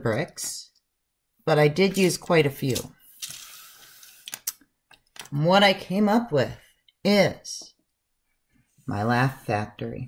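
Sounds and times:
plastic pieces sliding on table: 2.0 - 4.6.

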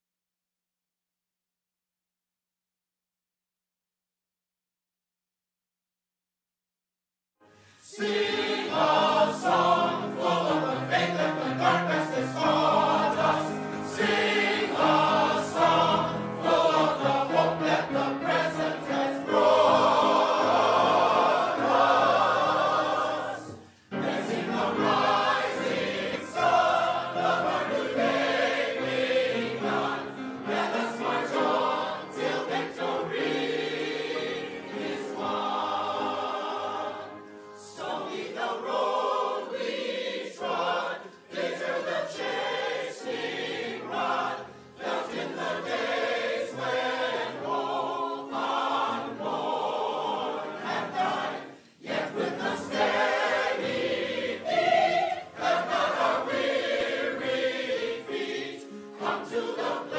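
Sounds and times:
mixed choir singing: 7.8 - 59.9
upright piano: 8.0 - 59.9.

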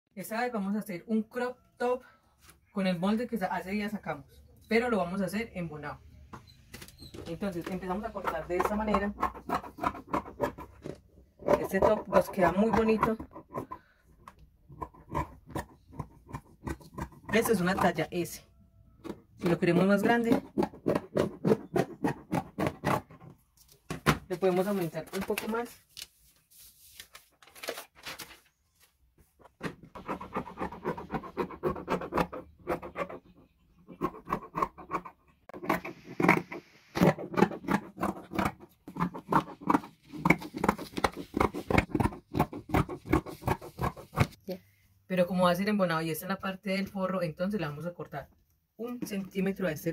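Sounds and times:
scissors cutting fabric: 14.6 - 18.0, 29.8 - 33.2, 33.9 - 44.4.

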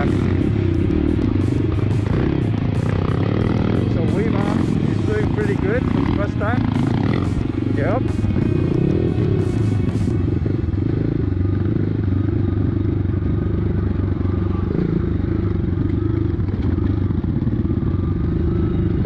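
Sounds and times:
dirt bike engine running: 0.0 - 19.0.

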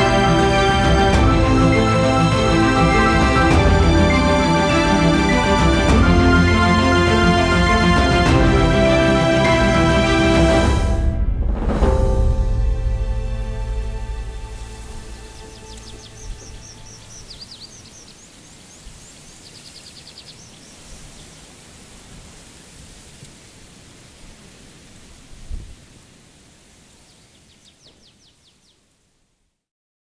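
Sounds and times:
music: 0.0 - 17.6
steady hiss: 13.4 - 29.3
small birds chirping: 14.6 - 22.0, 26.8 - 29.0.

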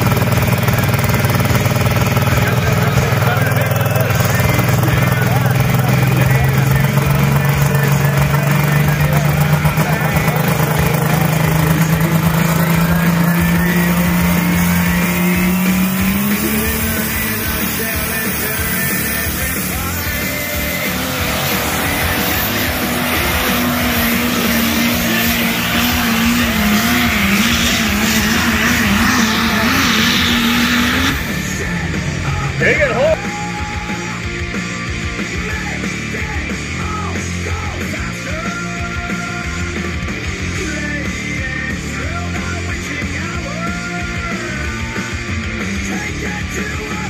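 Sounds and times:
diesel engine at full throttle: 0.0 - 47.0.

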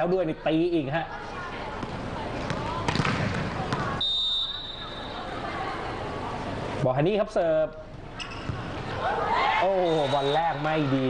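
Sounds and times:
arena crowd noise: 0.0 - 11.0
referee whistle blast: 4.0 - 5.2.

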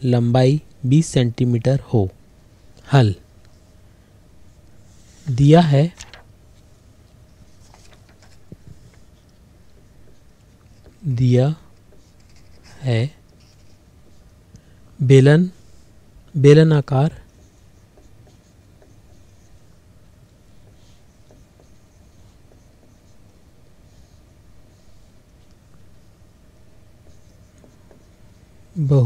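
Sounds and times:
person speaking: 5.2 - 6.2, 10.8 - 13.6, 15.0 - 17.4, 28.6 - 29.0
marker pen scratching whiteboard: 7.3 - 14.4, 17.0 - 26.2, 26.9 - 28.8.

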